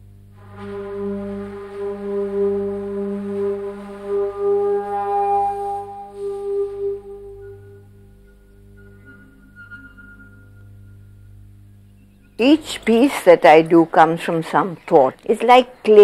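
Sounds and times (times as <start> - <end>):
low drone: 0.1 - 13.6
held wind instrument note: 0.3 - 11.7.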